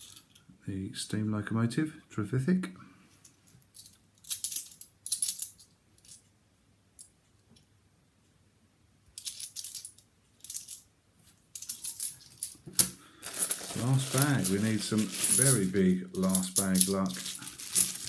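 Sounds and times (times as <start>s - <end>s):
coin bag rustling: 9.2s - 10.8s, 11.5s - 18.0s
coins clinking together: 11.6s - 18.0s.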